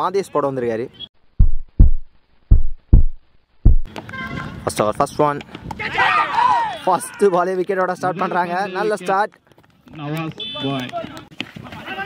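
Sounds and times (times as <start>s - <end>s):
high steady tone: 1.4s - 3.9s
men shouting and calling out: 5.8s - 9.2s.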